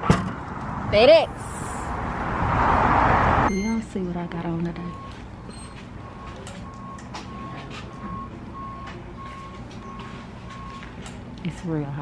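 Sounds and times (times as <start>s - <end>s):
electronic beeper beeps: 3.5s - 3.9s.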